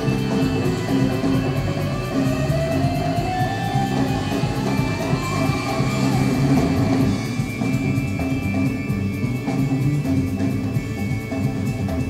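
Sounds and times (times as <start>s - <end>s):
guitar: 0.0s - 12.0s
live rock band playing: 0.0s - 12.0s.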